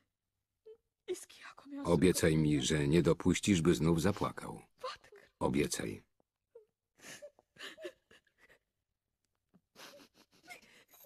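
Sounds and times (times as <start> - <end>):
person sobbing: 6.6 - 8.6.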